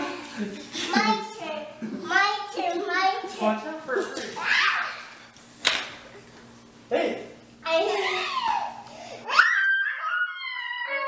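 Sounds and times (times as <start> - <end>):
child's voice: 0.8 - 3.6, 7.6 - 8.8
sharp smack on tiled floor: 5.6 - 6.0.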